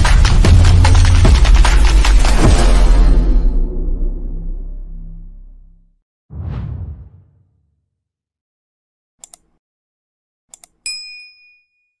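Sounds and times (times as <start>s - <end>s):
quick clicks: 9.2s - 9.6s
notification bell ding: 10.9s - 12.0s.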